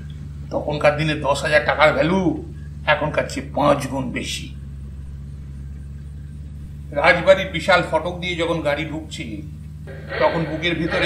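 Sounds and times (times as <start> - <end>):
steady low hum: 0.0 - 11.0
person narrating: 9.9 - 11.0.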